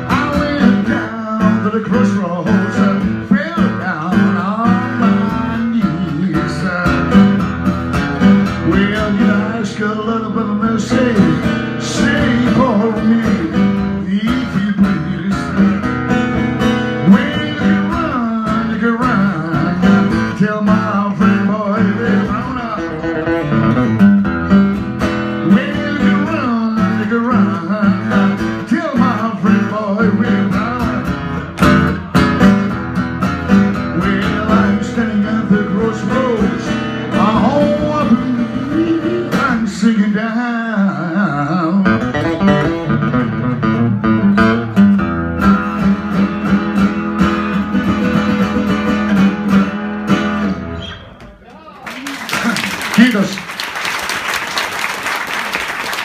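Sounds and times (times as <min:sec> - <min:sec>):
acoustic guitar playing: 0:00.0 - 0:51.5.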